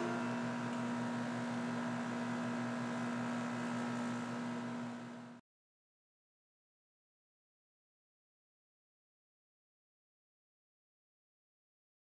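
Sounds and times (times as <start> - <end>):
low steady hum with hiss: 0.0 - 5.4.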